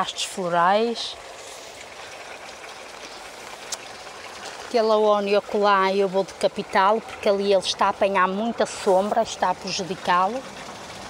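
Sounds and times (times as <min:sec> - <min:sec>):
running water trickling: 0:00.0 - 0:11.0.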